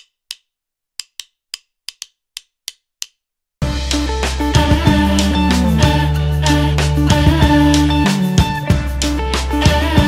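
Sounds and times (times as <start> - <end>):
dry wood-block clicks: 0.0 - 3.2
background music: 3.6 - 10.0.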